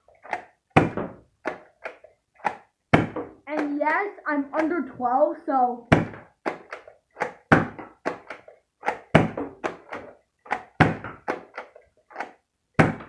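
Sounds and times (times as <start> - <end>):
toy blaster plastic clacks: 3.5 - 4.8, 6.4 - 12.4.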